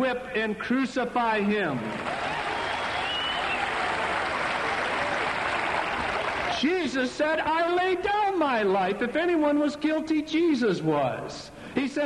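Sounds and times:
audience applauding: 0:01.9 - 0:06.7.

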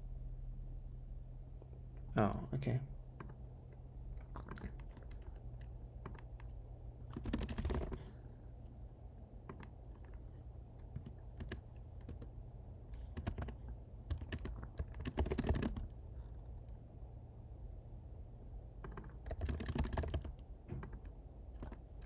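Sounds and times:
computer keyboard typing: 0:04.2 - 0:08.2, 0:09.4 - 0:12.3, 0:13.0 - 0:16.8, 0:18.8 - 0:22.0.

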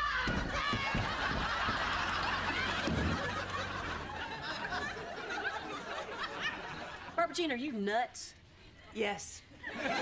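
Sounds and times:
studio audience laughing: 0:00.8 - 0:07.2, 0:09.6 - 0:10.0.

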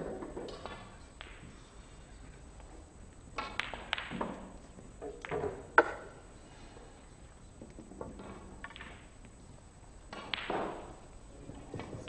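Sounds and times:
snooker balls clicking: 0:00.0 - 0:06.2, 0:07.2 - 0:09.4, 0:10.0 - 0:12.0.

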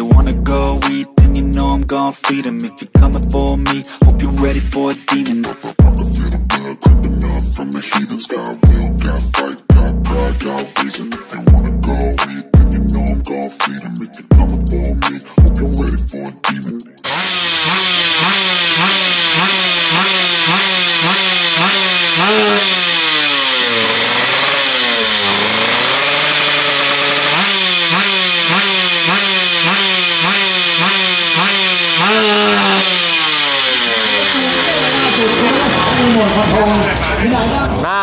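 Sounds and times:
motorcycle engine revving: 0:17.0 - 0:37.8.

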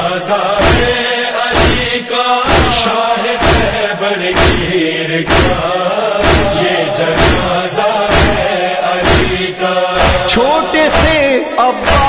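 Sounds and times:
voices chanting a lament: 0:00.0 - 0:12.0
hands striking chests: 0:10.0 - 0:10.3.

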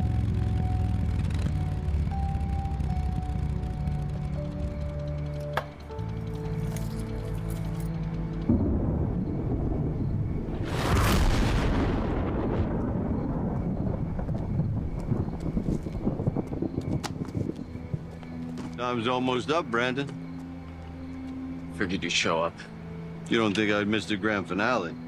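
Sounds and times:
dramatic film score tones: 0:00.0 - 0:25.0
low rumble: 0:07.1 - 0:18.2
deep rumbling boom: 0:08.5 - 0:17.0.

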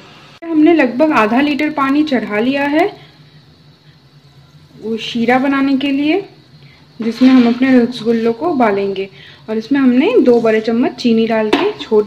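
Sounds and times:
person speaking: 0:07.0 - 0:08.8.

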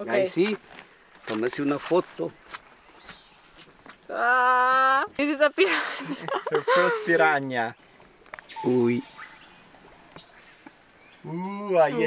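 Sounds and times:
rainforest insects chorus: 0:00.0 - 0:12.0.

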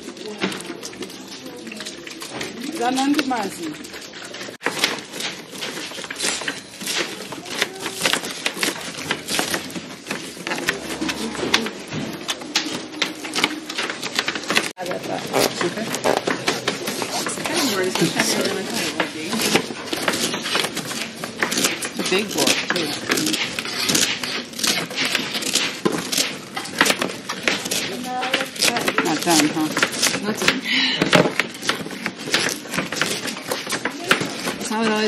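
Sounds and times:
voices talking: 0:10.4 - 0:19.7.

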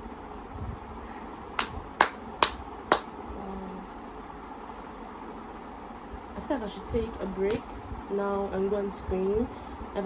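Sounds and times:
sharp hand claps: 0:01.6 - 0:03.2.

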